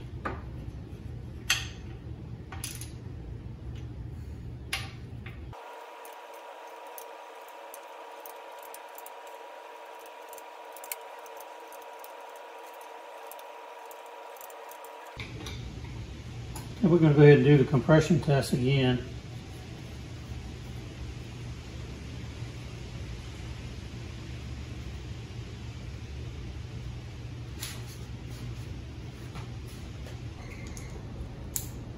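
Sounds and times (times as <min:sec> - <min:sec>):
faint steady hum: 0:00.0 - 0:31.9.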